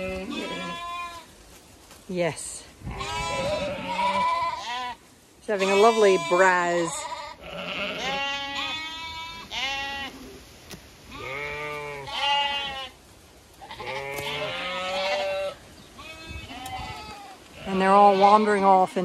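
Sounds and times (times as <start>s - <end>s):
sheep bleating: 0.0s - 1.3s, 2.9s - 10.3s, 11.1s - 13.0s, 13.6s - 18.7s.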